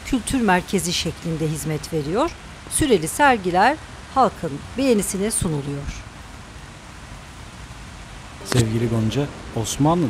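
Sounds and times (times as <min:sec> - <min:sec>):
rain falling: 0:00.0 - 0:10.0.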